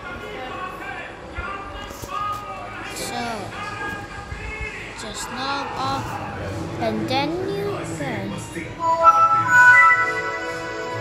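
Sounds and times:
indistinct talking: 0:00.0 - 0:11.0
music: 0:08.7 - 0:11.0.

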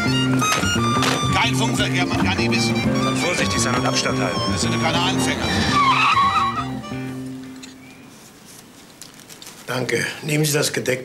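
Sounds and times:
car tyres squealing: 0:00.4 - 0:07.1
low orchestral score: 0:01.3 - 0:07.3.

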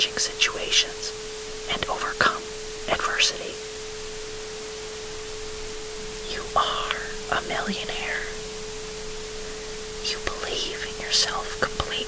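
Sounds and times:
person whispering: 0:00.0 - 0:01.1, 0:01.7 - 0:03.6, 0:06.2 - 0:08.4, 0:10.0 - 0:12.0
constant noise: 0:00.0 - 0:12.0.

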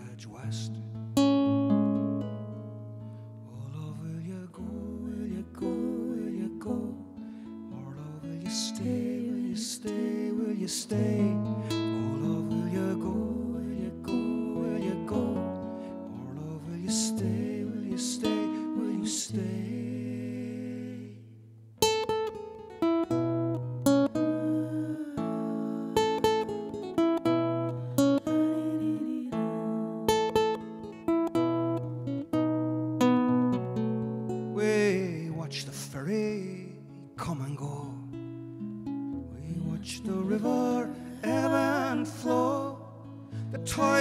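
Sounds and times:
acoustic guitar playing: 0:00.0 - 0:44.0.

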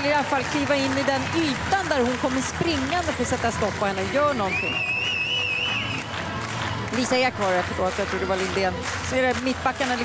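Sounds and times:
crowd noise: 0:00.0 - 0:10.0
pea whistle trilling blast: 0:04.5 - 0:05.9.

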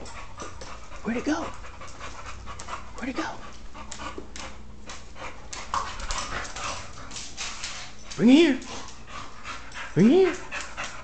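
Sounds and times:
dog panting: 0:00.0 - 0:11.0.

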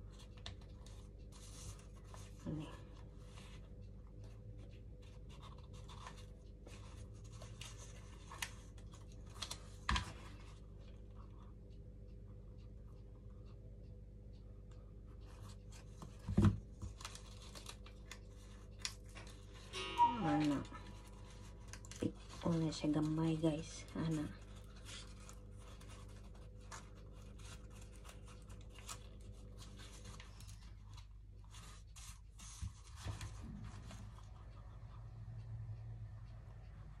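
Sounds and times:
paper rustling and crinkling: 0:00.0 - 0:10.6, 0:15.2 - 0:19.7, 0:20.4 - 0:34.5.

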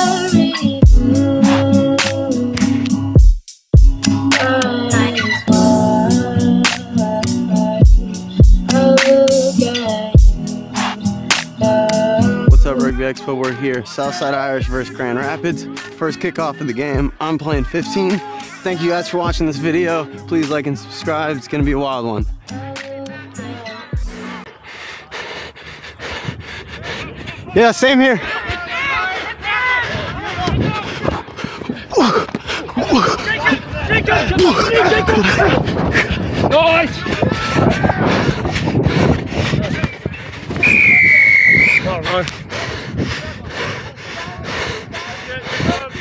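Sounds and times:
background music: 0:00.0 - 0:24.5
breathing: 0:24.5 - 0:27.5, 0:37.4 - 0:40.6, 0:42.1 - 0:46.0
person gasping while running: 0:24.5 - 0:27.6, 0:28.2 - 0:36.5, 0:37.3 - 0:40.6, 0:41.9 - 0:46.0
referee's whistle blast: 0:40.6 - 0:41.9.

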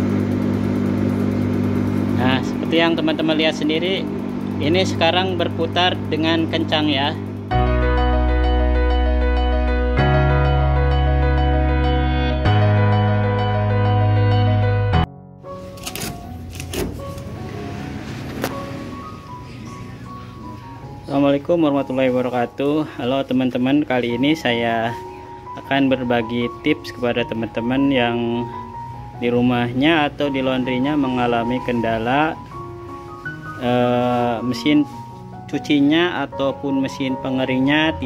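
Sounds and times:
clothes dryer motor humming: 0:00.0 - 0:38.0
soft background music: 0:01.8 - 0:38.0.

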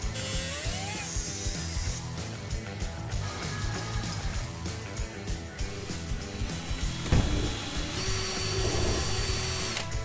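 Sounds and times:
rock music with a beat: 0:00.0 - 0:10.0
cordless drill whining: 0:05.8 - 0:10.0.

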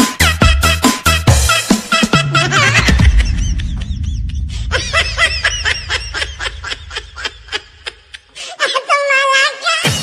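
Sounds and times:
sped-up cartoon giggling: 0:02.0 - 0:08.3
low bass rumble: 0:02.4 - 0:08.2.

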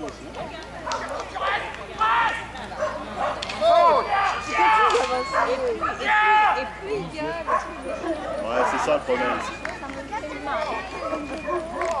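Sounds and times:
people's voices: 0:00.0 - 0:12.0
dog barking: 0:00.8 - 0:01.5, 0:02.8 - 0:03.5, 0:05.2 - 0:06.0, 0:07.4 - 0:09.0.

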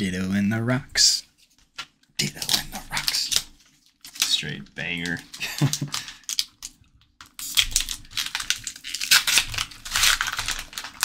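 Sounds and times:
foil wrapper crinkling: 0:02.2 - 0:11.0.

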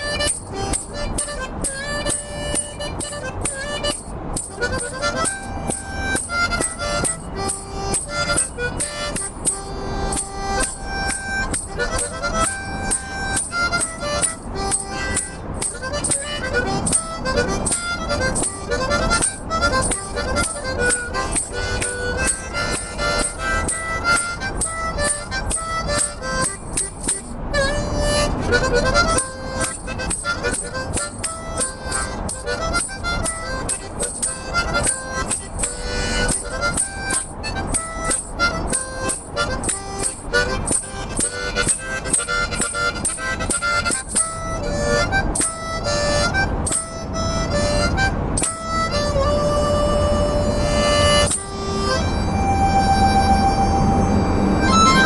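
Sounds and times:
harmonica playing: 0:00.0 - 0:55.0.

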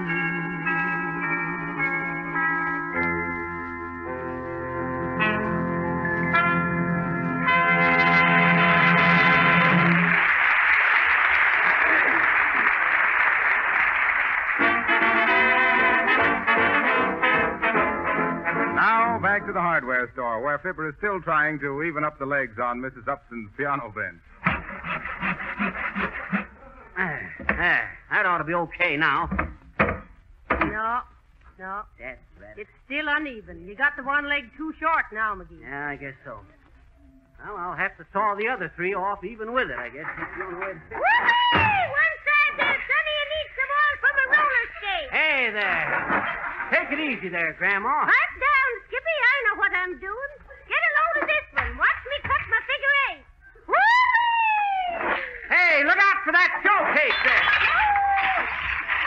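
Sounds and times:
handsaw cutting wood: 0:24.4 - 0:26.5.

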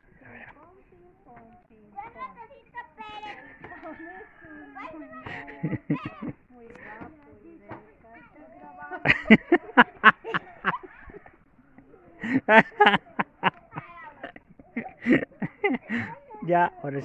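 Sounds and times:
indistinct talk of adults and children: 0:00.0 - 0:17.0
loud burst of laughter: 0:12.2 - 0:16.1.

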